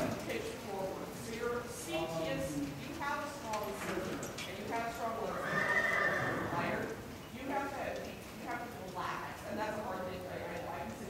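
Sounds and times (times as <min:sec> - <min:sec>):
horse whinnying: 0:05.2 - 0:07.0.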